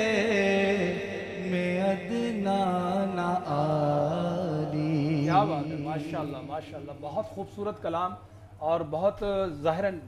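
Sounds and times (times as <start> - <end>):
man singing unaccompanied: 0.0 - 7.4.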